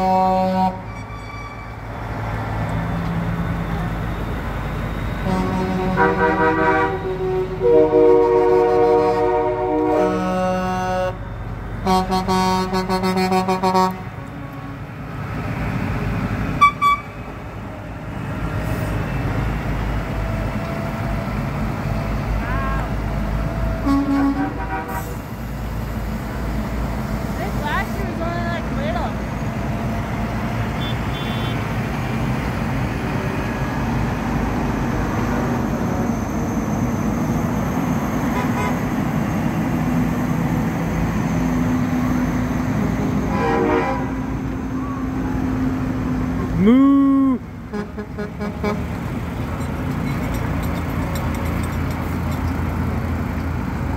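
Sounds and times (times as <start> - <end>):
truck horn: 0.0 - 1.9, 5.1 - 15.0, 16.6 - 17.2, 23.7 - 25.4, 30.7 - 31.8, 38.3 - 39.0, 43.2 - 45.2, 47.1 - 49.1
diesel truck engines rolling past: 0.0 - 53.9.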